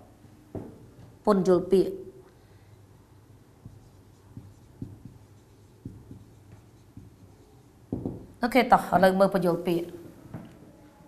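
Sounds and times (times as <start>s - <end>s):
marker scratching on whiteboard: 3.2s - 8.4s
pen tip tapping board: 3.6s - 7.3s, 7.9s - 8.3s.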